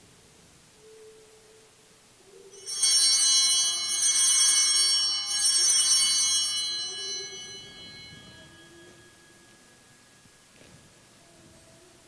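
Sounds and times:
altar bells jingling: 2.6 - 11.2.

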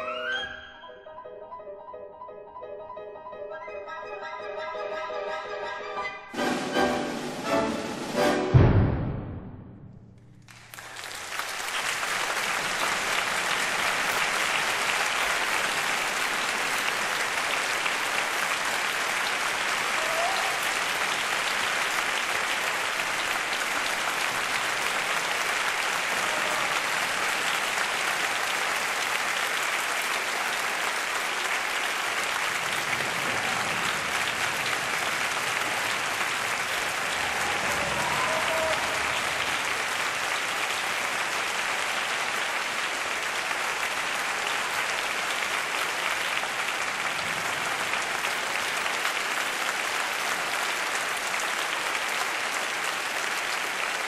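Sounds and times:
audience applause: 10.4 - 54.0.

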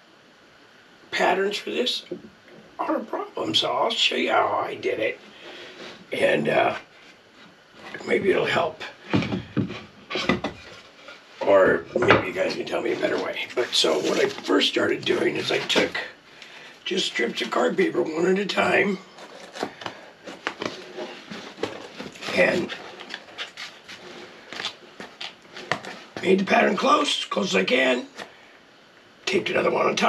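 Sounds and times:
cardboard and tape rustling: 9.0 - 16.1, 18.5 - 26.4.

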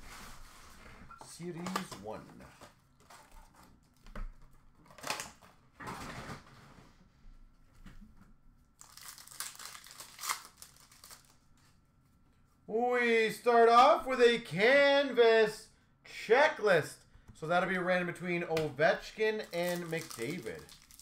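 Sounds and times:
foil wrappers crinkling: 8.8 - 11.4, 19.4 - 21.0.

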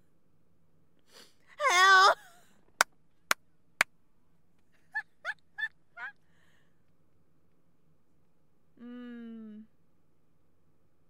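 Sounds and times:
high-pitched squeaky laughs: 4.9 - 6.2.

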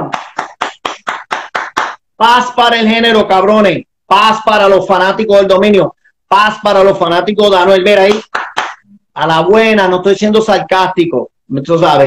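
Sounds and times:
person clapping hands: 0.0 - 2.0, 8.1 - 8.8.

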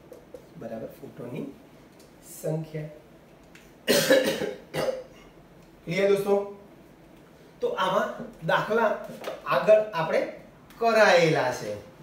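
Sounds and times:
man coughing: 3.9 - 5.2.

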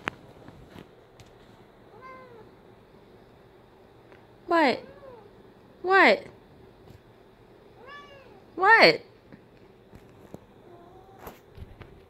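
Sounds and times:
cat meowing softly: 1.9 - 2.5, 4.8 - 5.3, 7.8 - 8.5.

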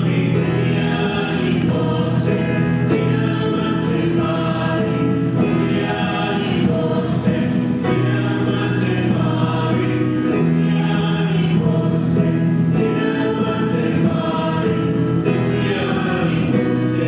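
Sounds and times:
choir singing a hymn: 0.0 - 17.0.

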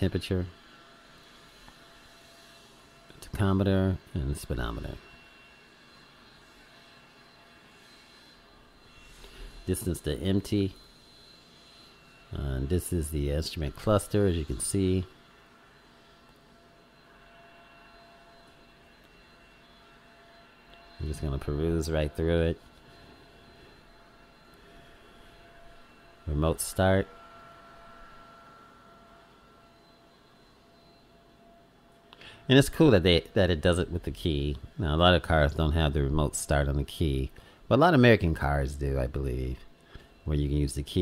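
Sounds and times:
faint steady tones: 0.0 - 41.0
low hiss and hum: 0.0 - 41.0.

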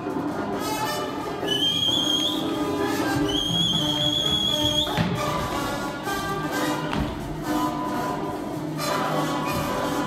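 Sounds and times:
orchestral music: 0.0 - 10.0
high whistle-like note: 1.4 - 5.1.

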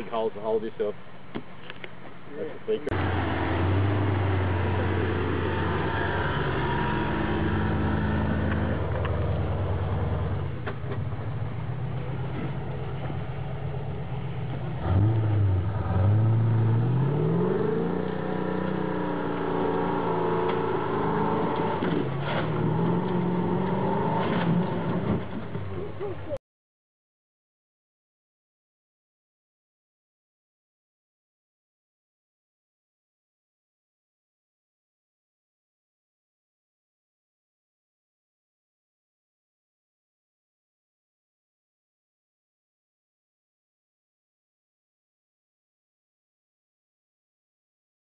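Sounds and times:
off-road vehicle engine revving: 2.8 - 26.4
vehicle knocks and clatters: 10.5 - 11.4, 21.4 - 25.8.

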